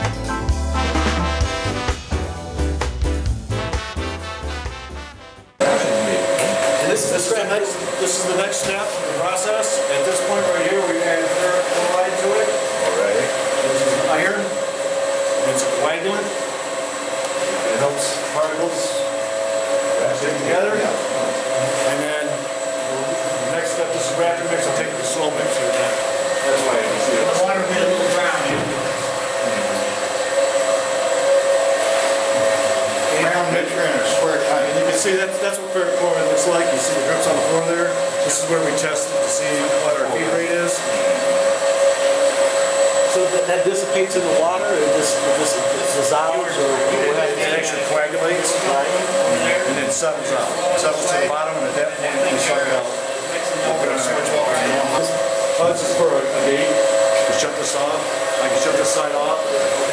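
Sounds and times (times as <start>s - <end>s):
people talking indistinctly: 5.6s - 31.2s, 32.2s - 41.6s, 42.7s - 59.9s
machinery hum: 5.6s - 59.9s.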